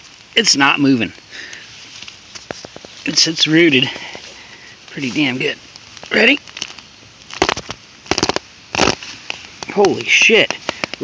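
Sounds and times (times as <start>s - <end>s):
roots cracking and snapping: 0.0s - 11.0s.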